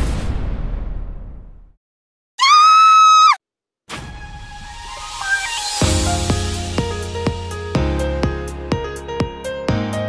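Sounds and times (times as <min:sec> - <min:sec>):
high-pitched scream: 0:02.4 - 0:03.4.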